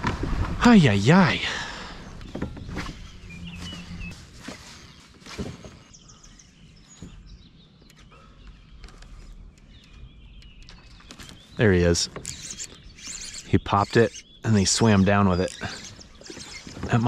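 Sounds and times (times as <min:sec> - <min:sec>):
birds chirping: 0:00.6 - 0:17.0
faint lakeside ambience: 0:00.7 - 0:17.0.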